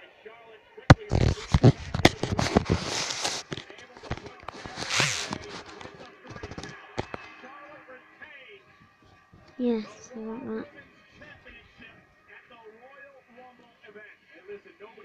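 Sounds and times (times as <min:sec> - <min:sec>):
rustling: 0:01.0 - 0:07.3.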